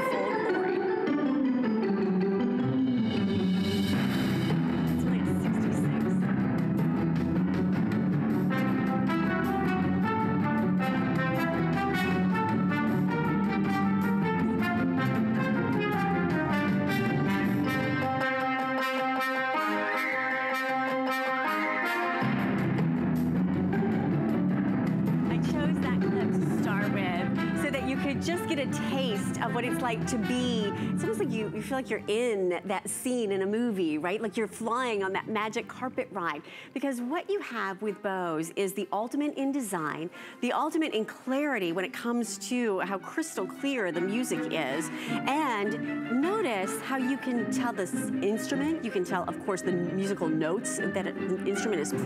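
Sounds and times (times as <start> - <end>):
latin music from speaker: 0.0 - 33.0, 43.5 - 52.0.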